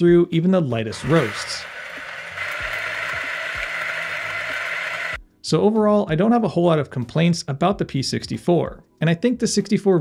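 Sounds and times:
coffee grinder whirring: 0:00.9 - 0:05.2.

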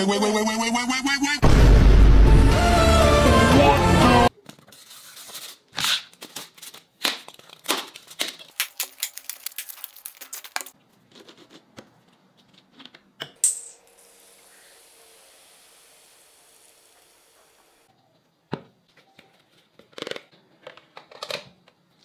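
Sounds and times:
styrofoam cracking and snapping: 0:05.8 - 0:10.8.

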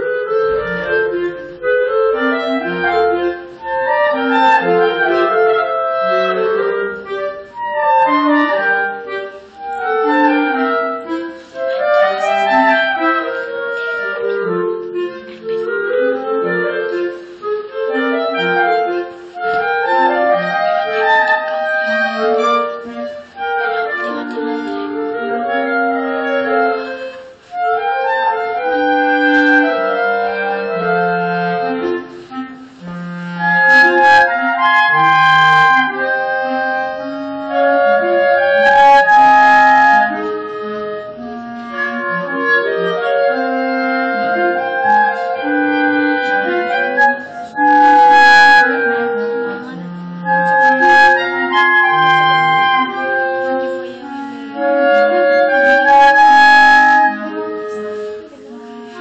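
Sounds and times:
clarinet quartet playing: 0:00.0 - 0:59.0.

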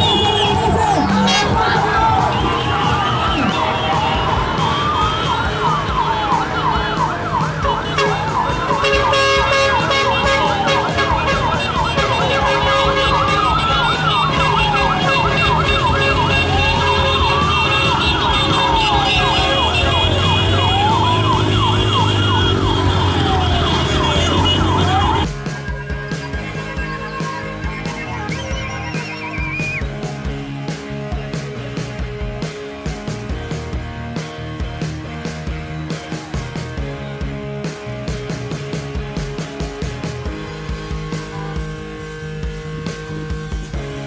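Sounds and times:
siren wail rising and falling: 0:00.0 - 0:26.0, 0:40.4 - 0:43.4
fast siren warble: 0:13.0 - 0:25.3.

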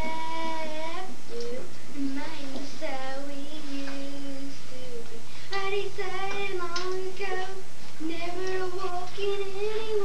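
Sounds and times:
child singing: 0:00.0 - 0:10.0.

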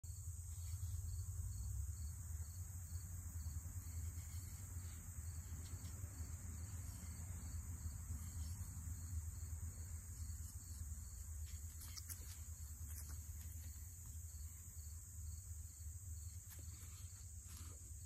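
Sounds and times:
insects trilling: 0:00.1 - 0:18.0.

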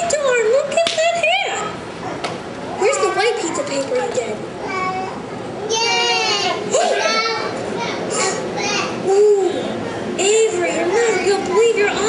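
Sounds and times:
young children calling and chattering: 0:00.0 - 0:12.0.

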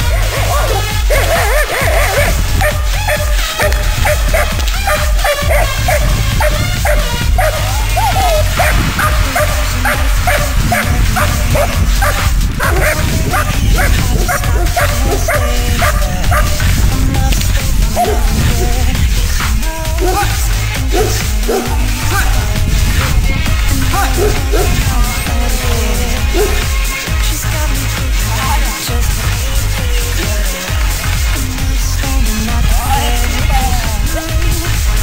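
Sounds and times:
dog barking aggressively: 0:00.0 - 0:16.7, 0:17.9 - 0:18.8, 0:20.0 - 0:22.2, 0:23.9 - 0:24.9, 0:26.3 - 0:26.7
background music with bass beat: 0:00.0 - 0:35.0.

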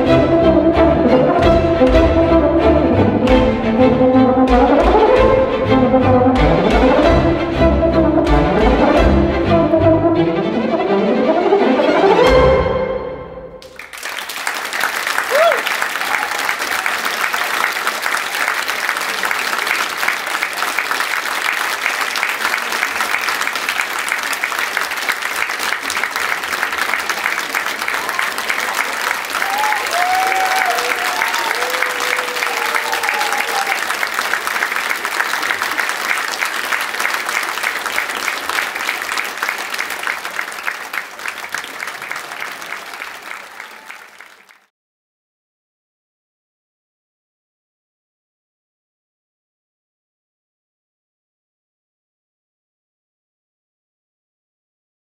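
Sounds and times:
audience applauding: 0:13.6 - 0:44.7.

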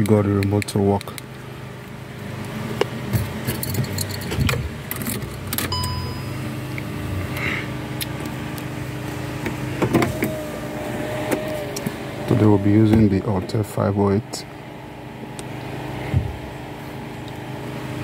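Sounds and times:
steady low hum: 0:00.0 - 0:18.0
car key rattling in ignition: 0:03.2 - 0:06.1
short electronic beep: 0:05.7 - 0:06.6.

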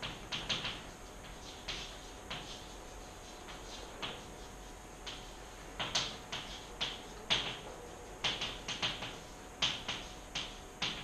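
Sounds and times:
chalk tapping and scratching on blackboard: 0:00.0 - 0:11.0.

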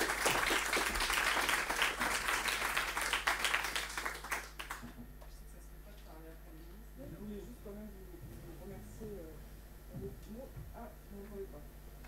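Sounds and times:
applause: 0:00.0 - 0:05.3.

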